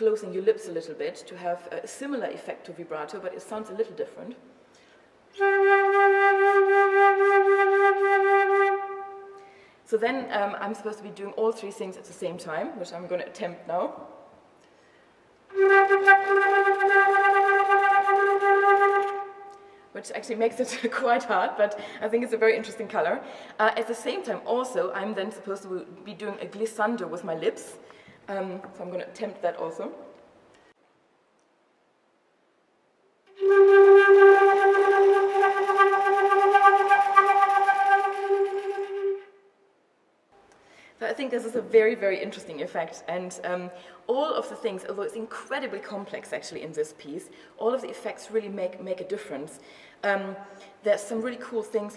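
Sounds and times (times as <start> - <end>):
flute flutter-tongued note: 5.4 - 9.4, 15.5 - 19.7, 33.3 - 39.4.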